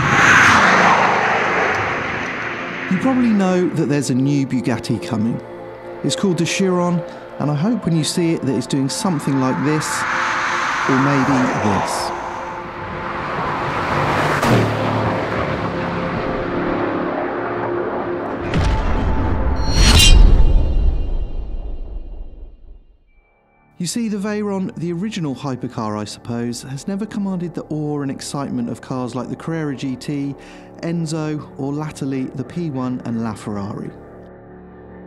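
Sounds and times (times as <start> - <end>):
sports car passing at speed: 0.0 - 4.8, 8.1 - 18.5.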